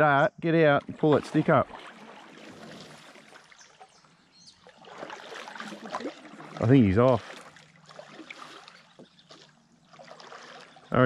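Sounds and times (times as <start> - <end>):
water lapping around kayak: 0.6 - 11.0.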